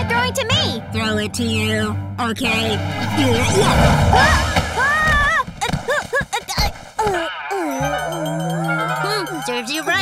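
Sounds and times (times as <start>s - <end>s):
low rushing rumble: 2.5s - 5.6s.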